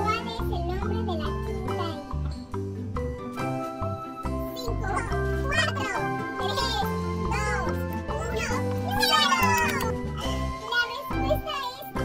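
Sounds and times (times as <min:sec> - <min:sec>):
upbeat music with bass line: 0:00.0 - 0:12.0.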